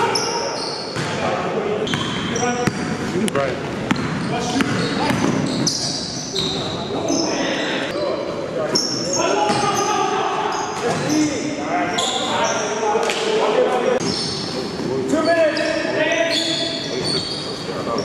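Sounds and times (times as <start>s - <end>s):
sneakers squeaking on hardwood floor: 0.0s - 12.8s, 13.9s - 18.0s
voices echoing in a large hall: 0.0s - 18.0s
basketball bouncing: 1.9s - 3.0s, 3.7s - 5.4s.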